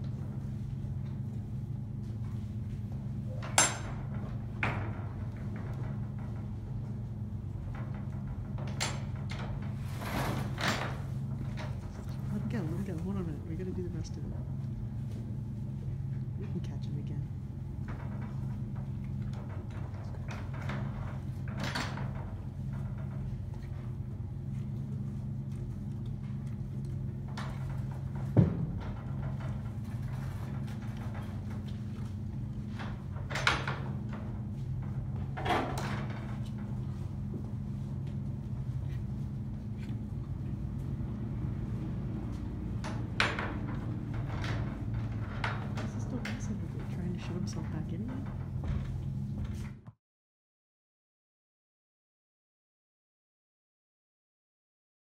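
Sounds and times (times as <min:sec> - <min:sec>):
steady low hum: 0:00.0 - 0:49.9
metal latch and gate knocking: 0:03.4 - 0:04.0.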